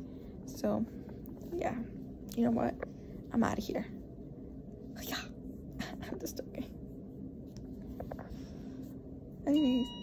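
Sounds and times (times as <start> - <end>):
low room hum: 0.0 - 10.0
woman whispering and breathing: 4.8 - 6.8.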